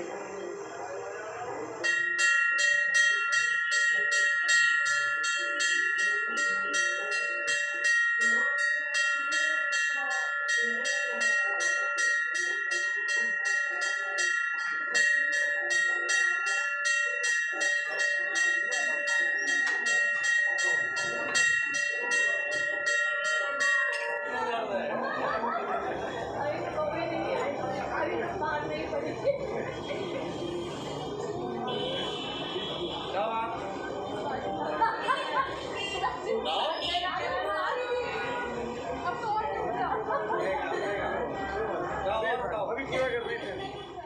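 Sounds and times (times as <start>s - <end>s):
temple bell ringing: 1.8s - 42.0s.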